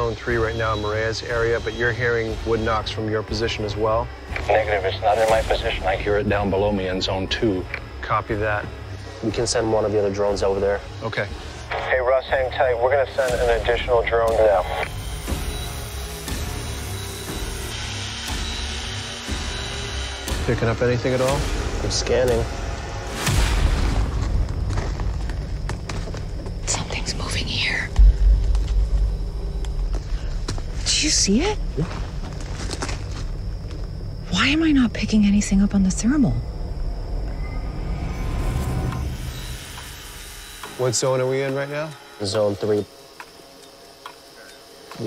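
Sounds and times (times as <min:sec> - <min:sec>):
low rumbling drone: 0:13.2 - 0:41.4
deep boom: 0:27.9 - 0:30.8.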